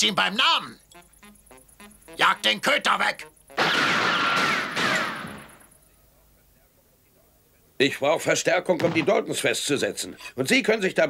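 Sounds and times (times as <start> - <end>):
cartoon gunshot bang: 3.6 - 5.6.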